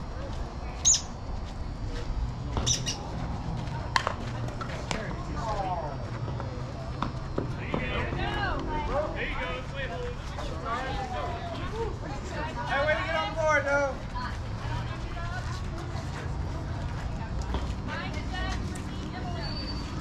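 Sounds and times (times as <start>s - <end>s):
voices calling out outdoors: 0.0s - 20.0s.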